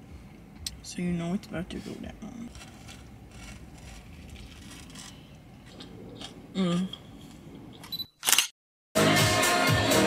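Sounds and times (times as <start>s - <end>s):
low steady rumble: 0.0s - 8.0s
person chewing food: 2.5s - 7.4s.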